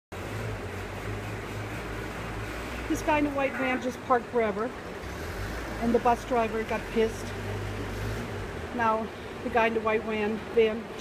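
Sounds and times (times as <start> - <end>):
vehicle engines humming: 0.1 - 11.0.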